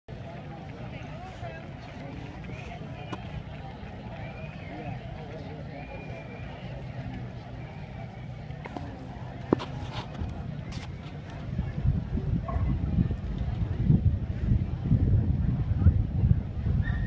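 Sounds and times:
distant people talking: 0.1 - 17.0.

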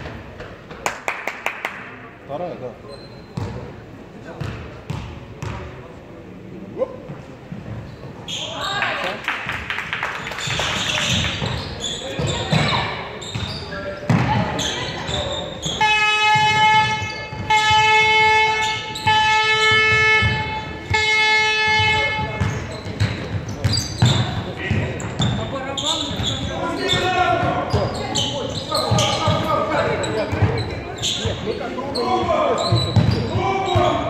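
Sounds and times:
basketball bouncing on floor: 12.2 - 13.5, 14.1 - 14.6, 21.8 - 25.4, 32.7 - 33.9
horn blasts: 15.6 - 22.5.

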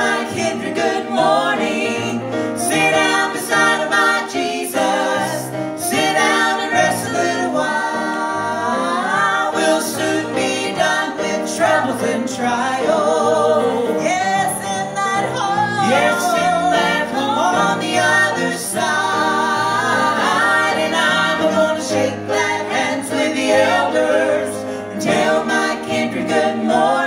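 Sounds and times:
vocal trio singing gospel harmony: 0.0 - 27.0.

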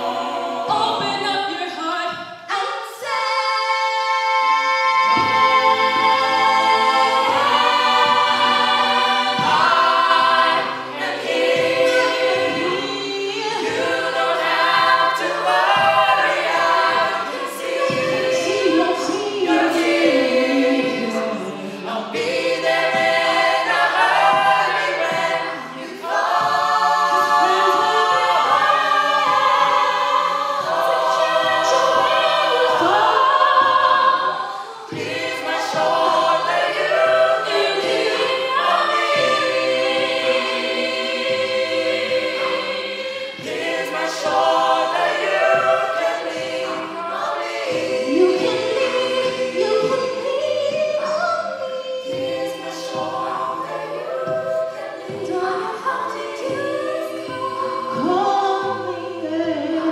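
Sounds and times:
a cappella group singing: 0.0 - 59.9.

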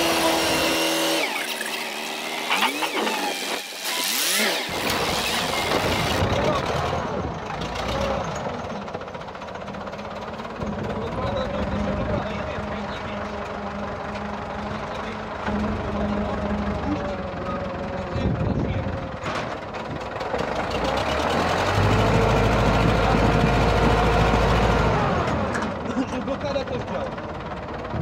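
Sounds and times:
diesel tractor engine idling: 5.6 - 28.0.

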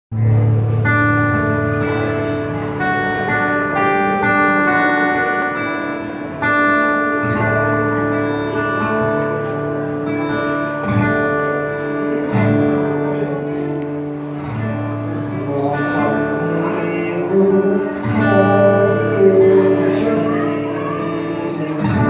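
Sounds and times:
acoustic guitar chords strummed: 0.1 - 22.0.

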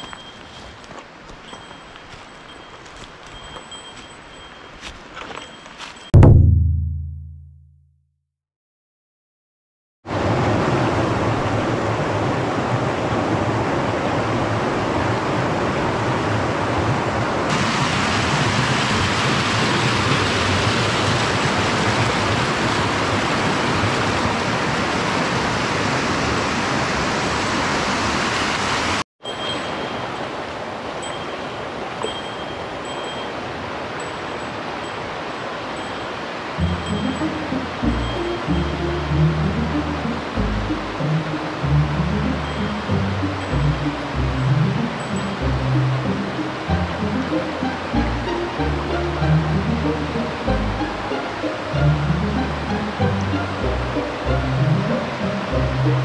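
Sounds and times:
background music low notes: 6.2 - 7.7, 36.6 - 56.0
water rushing over rocks: 10.1 - 56.0
faint high chiming notes: 29.2 - 30.3, 31.0 - 35.0, 35.8 - 39.9, 41.6 - 49.3.

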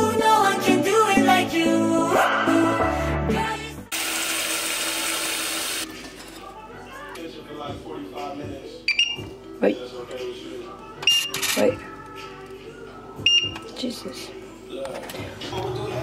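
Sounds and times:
background music: 0.0 - 16.0
tap water running into pot: 3.9 - 5.9
short high beeps: 8.9 - 9.2, 13.3 - 13.6.

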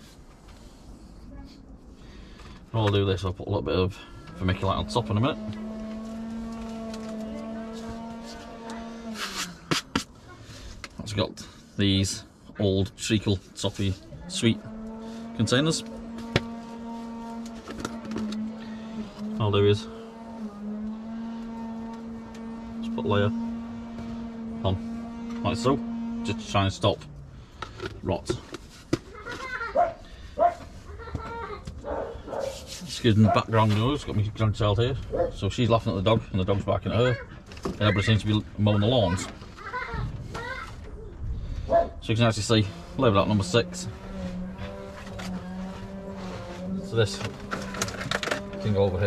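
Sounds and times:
distant lawn mower engine: 4.0 - 10.7, 13.8 - 49.0.

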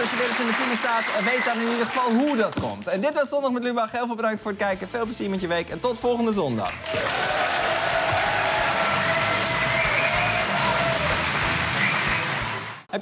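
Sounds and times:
audience applauding: 0.0 - 2.8, 6.7 - 12.9.

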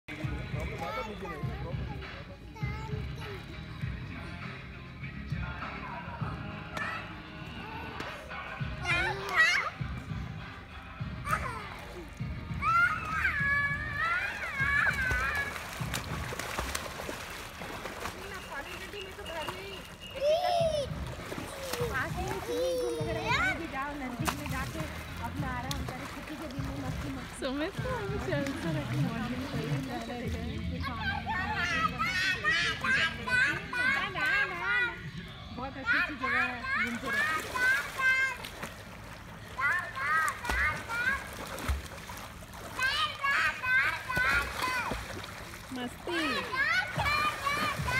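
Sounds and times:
music playing: 0.1 - 41.8, 42.8 - 47.9
children calling and squealing: 6.6 - 10.1, 11.0 - 24.5, 30.7 - 47.9.

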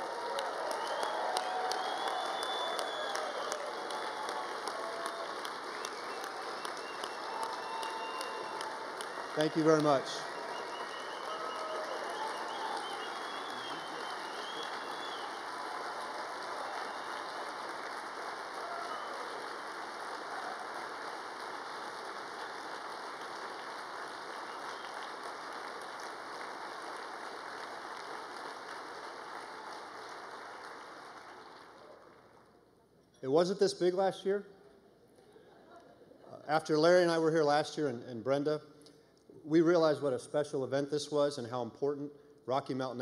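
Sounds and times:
audience applauding: 0.0 - 32.5.

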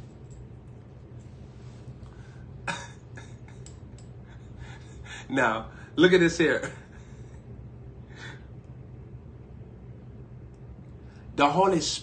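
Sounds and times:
low background hum: 0.0 - 12.0
man coughing: 2.6 - 3.6.

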